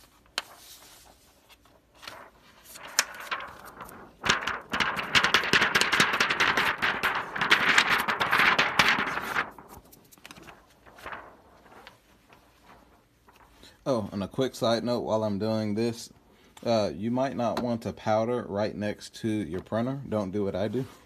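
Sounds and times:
plastic film crackling and rattling: 0:00.1 - 0:13.7.

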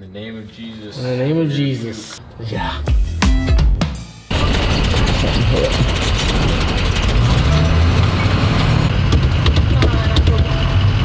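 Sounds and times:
bus engine droning: 0:04.3 - 0:11.0.

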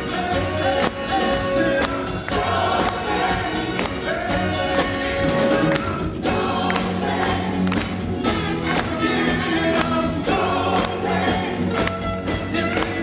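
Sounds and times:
lead and backing vocals singing: 0:00.0 - 0:13.0
live soul band playing: 0:00.0 - 0:13.0.

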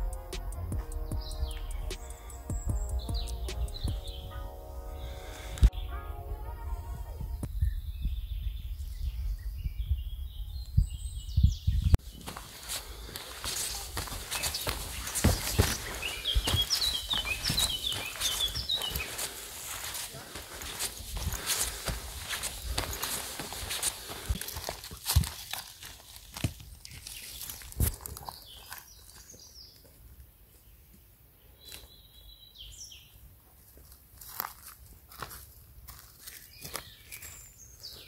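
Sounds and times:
soft background music: 0:00.0 - 0:07.5
birds chirping: 0:00.9 - 0:24.6, 0:26.3 - 0:33.3, 0:36.3 - 0:38.0
footsteps on dirt path: 0:12.0 - 0:30.1, 0:33.7 - 0:38.0.

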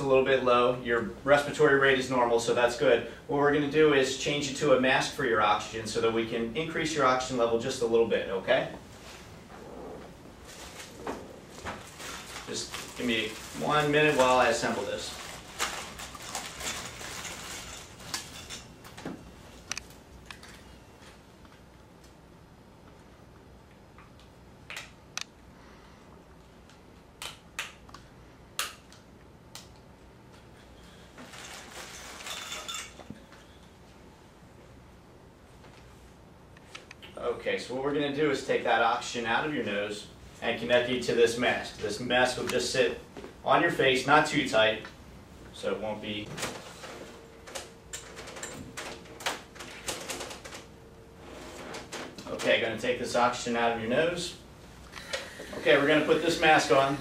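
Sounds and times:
plastic rustling: 0:10.3 - 0:19.6, 0:30.9 - 0:33.0.

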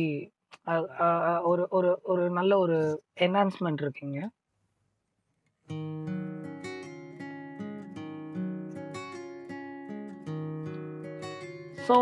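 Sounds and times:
nylon-string acoustic guitar: 0:05.6 - 0:12.0.

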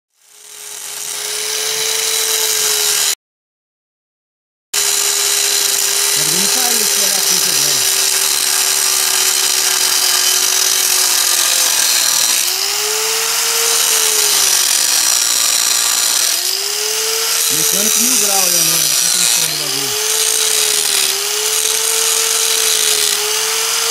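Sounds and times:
angle grinder cutting metal: 0:00.1 - 0:03.2, 0:04.8 - 0:23.9.

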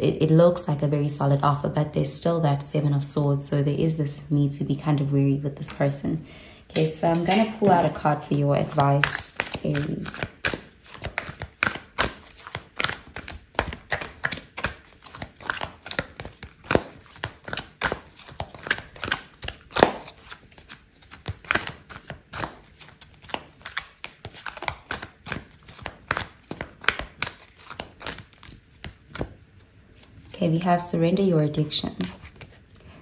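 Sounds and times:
cards being shuffled by hand: 0:06.8 - 0:30.2, 0:31.7 - 0:32.9.

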